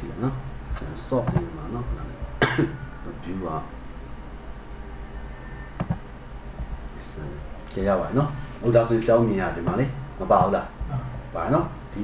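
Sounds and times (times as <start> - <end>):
people talking: 0.0 - 3.7, 6.9 - 12.0
person coughing: 2.4 - 2.8.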